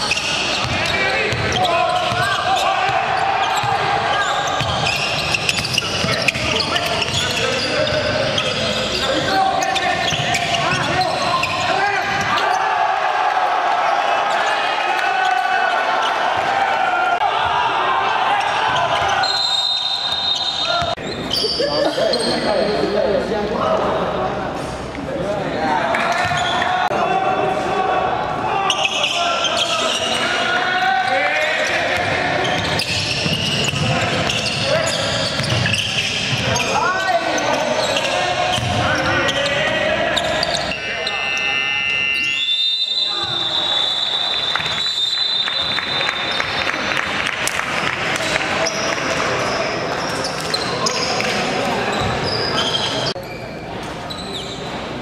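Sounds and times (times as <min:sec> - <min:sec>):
players' voices: 0:00.0 - 0:44.8
basketball bouncing: 0:00.6 - 0:02.3, 0:04.6 - 0:06.4, 0:38.6 - 0:38.8
sneaker squeaks on hardwood: 0:03.4 - 0:12.6, 0:32.4 - 0:37.1, 0:51.9 - 0:54.7.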